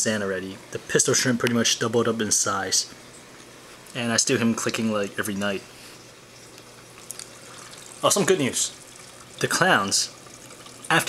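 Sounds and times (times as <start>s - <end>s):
aquarium water trickling: 0.0s - 11.0s
small ticks: 6.4s - 7.9s.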